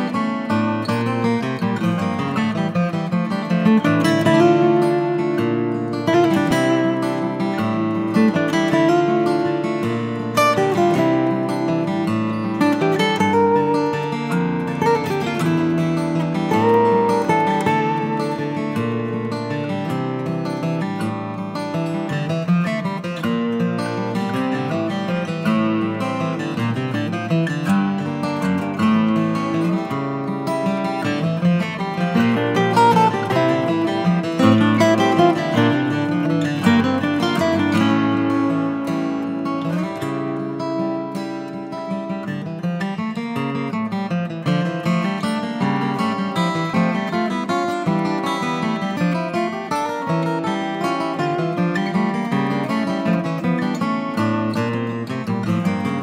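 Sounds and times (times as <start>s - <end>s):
acoustic guitar music: 0.0s - 56.0s.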